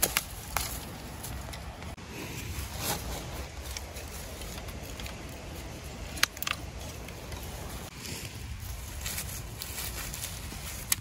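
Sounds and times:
wind rumbling on microphone: 0.4 - 11.0.

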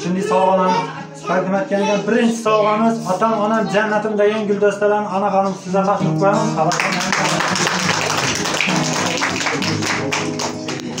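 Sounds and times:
acoustic guitar low notes: 0.0 - 11.0
group clapping: 6.5 - 11.0.

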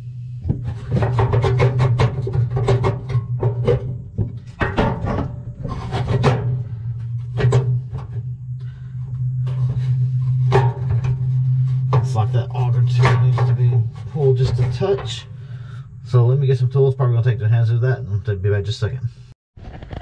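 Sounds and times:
background music with low drone: 0.0 - 17.3
hand scraping in metal fire pot: 0.6 - 15.8.

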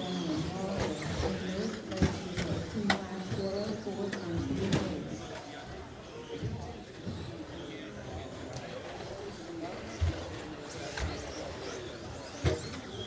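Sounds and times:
rc trucks running: 0.0 - 5.3, 7.0 - 13.0.

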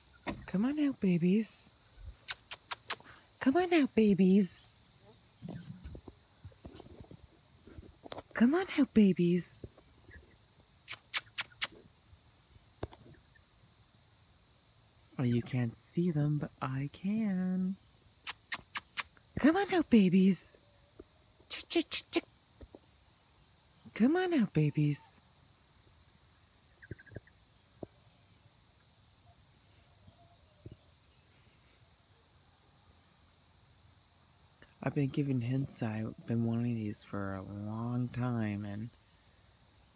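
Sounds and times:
mouth clicking squeaks: 2.2 - 3.2, 10.8 - 11.8, 18.2 - 19.2
quick high chirps: 10.8 - 11.8.

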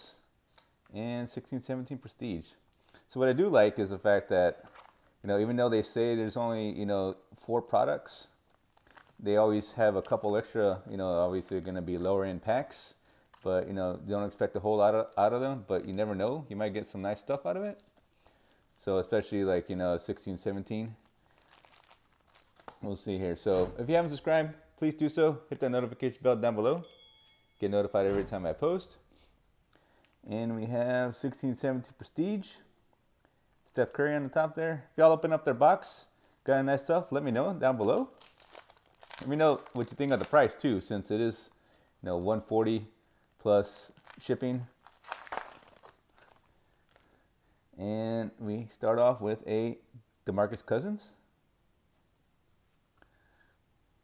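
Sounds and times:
foil wrappers crinkling: 4.6 - 5.2, 7.0 - 12.5, 17.8 - 23.0, 36.2 - 40.9, 41.5 - 47.1.

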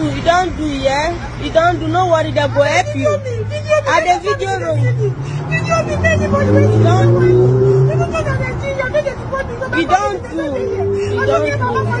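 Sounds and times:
low vehicle hum: 0.0 - 12.0
street noise: 0.0 - 12.0
woman pleading in distress: 2.0 - 12.0.

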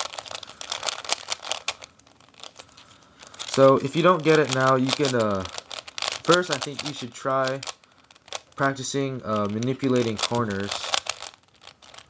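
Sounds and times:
puzzle cube clicking as turned: 0.0 - 12.0.

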